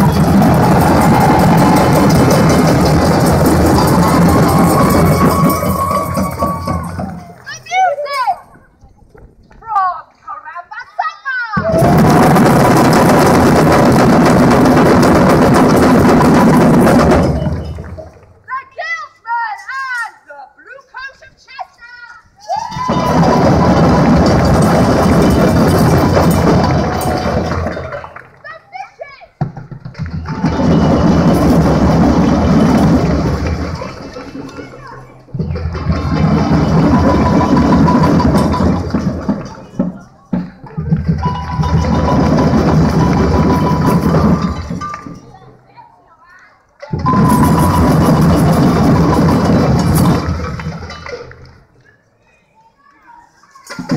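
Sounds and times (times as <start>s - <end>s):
parade drum band playing: 0.0s - 7.6s, 11.6s - 18.1s, 22.7s - 28.1s, 30.0s - 45.2s, 46.9s - 51.1s.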